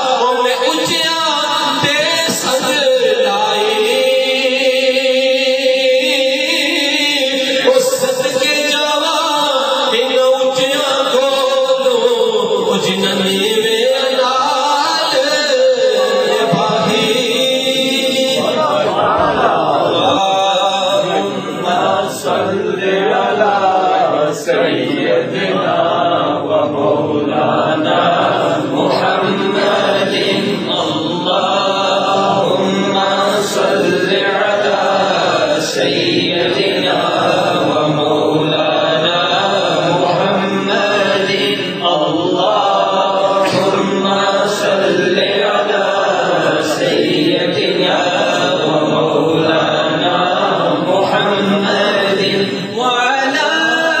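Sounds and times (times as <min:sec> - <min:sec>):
man chanting: 0:00.0 - 0:54.0.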